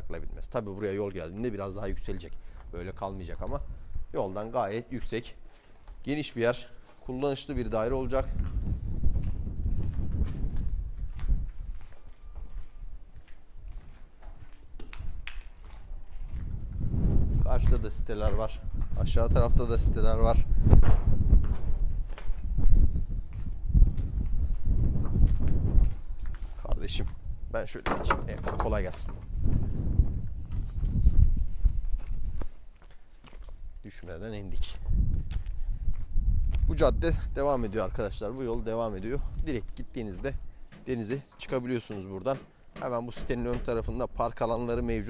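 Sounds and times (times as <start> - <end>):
footsteps crunching on gritty concrete: 4.2 - 27.2, 28.7 - 44.6
footsteps on gravel: 11.0 - 16.6, 30.4 - 34.2.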